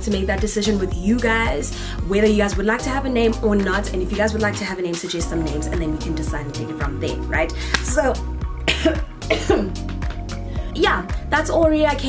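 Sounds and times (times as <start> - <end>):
background music: 0.0 - 12.0
woman coughing: 8.6 - 9.8.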